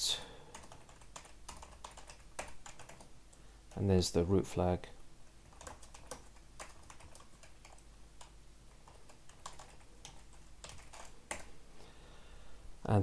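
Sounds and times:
faint keyboard typing: 0:00.4 - 0:04.3, 0:05.2 - 0:11.6.

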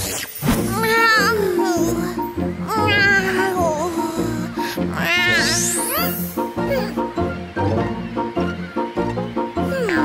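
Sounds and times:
background music: 0:00.0 - 0:10.0
cartoon kitten meowing: 0:04.9 - 0:06.2.

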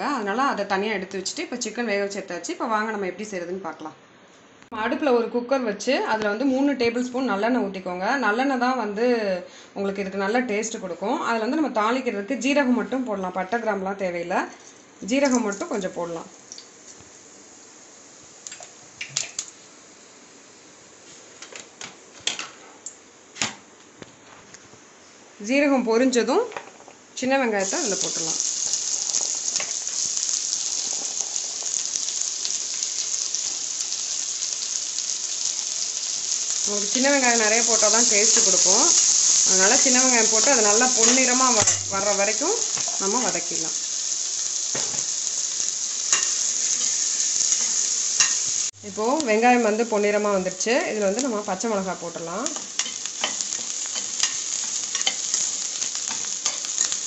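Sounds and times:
shallots sizzling in hot oil: 0:14.7 - 0:20.6, 0:27.2 - 0:57.0.

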